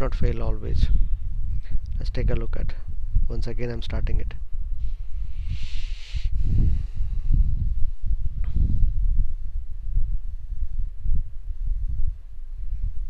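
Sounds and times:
faint hiss: 4.8 - 6.9.

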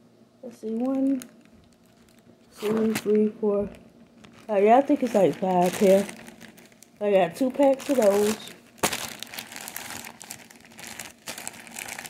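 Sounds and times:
plastic bag crinkling: 0.5 - 12.0.

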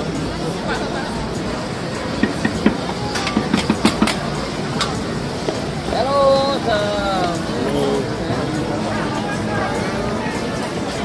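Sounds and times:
busy street noise: 0.0 - 11.0
sharp clacks and clicks: 2.2 - 5.6.

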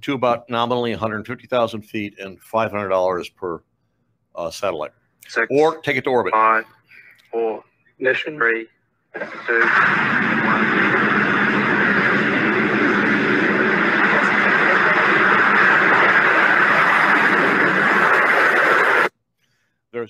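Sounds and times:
rocket launch roar: 9.2 - 19.1.

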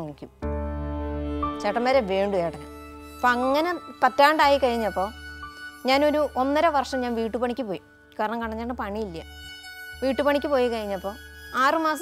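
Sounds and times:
woman speaking: 0.0 - 0.4, 1.6 - 2.6, 3.2 - 5.1, 5.8 - 9.3, 10.0 - 12.0
background music: 0.0 - 12.0.

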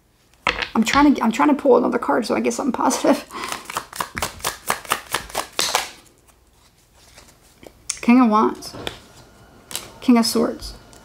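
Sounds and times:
cards being shuffled: 3.0 - 7.8.

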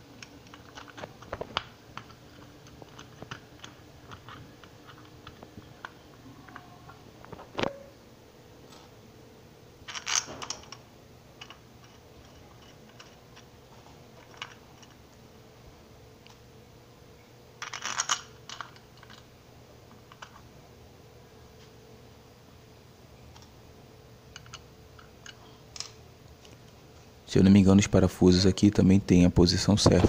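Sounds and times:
faint steady hum: 0.0 - 30.0
small metal parts clicking and rattling: 0.2 - 7.0, 9.8 - 10.8, 11.4 - 15.1, 17.6 - 19.3, 19.9 - 20.5, 24.3 - 26.6.

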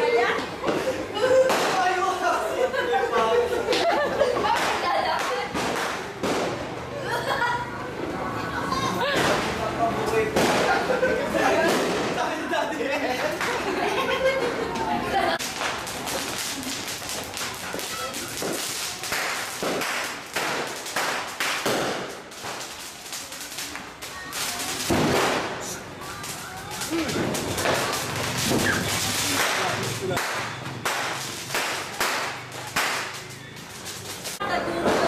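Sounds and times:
firecrackers cracking: 0.0 - 8.2, 8.9 - 35.0
voices: 0.0 - 21.2, 22.0 - 35.0.

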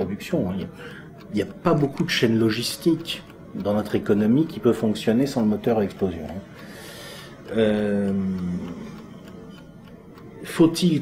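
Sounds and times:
man's drawn-out hesitation: 0.0 - 11.0.

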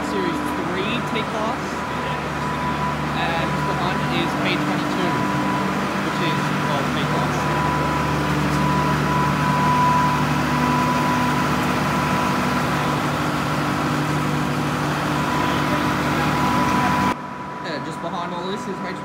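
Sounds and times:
diesel locomotive idling: 0.0 - 19.0.

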